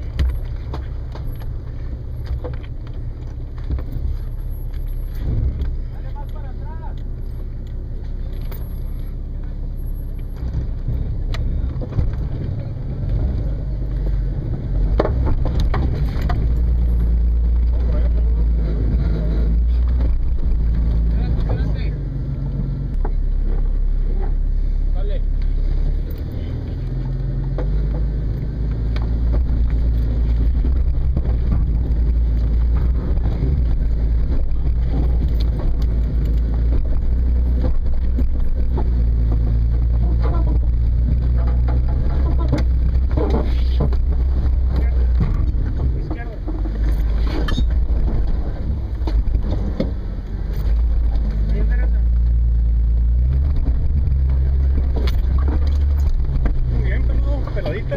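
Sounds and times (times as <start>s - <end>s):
engine pulling at low revs: 0.0s - 57.9s.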